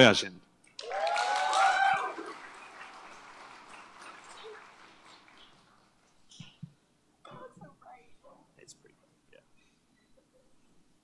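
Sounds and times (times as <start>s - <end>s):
audience applauding and cheering: 0.7s - 6.0s.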